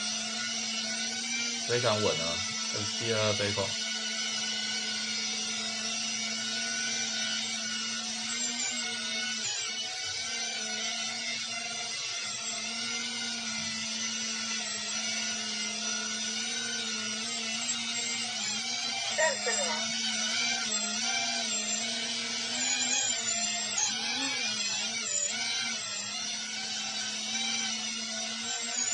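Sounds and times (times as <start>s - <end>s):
quadcopter high whine: 0.0s - 28.9s.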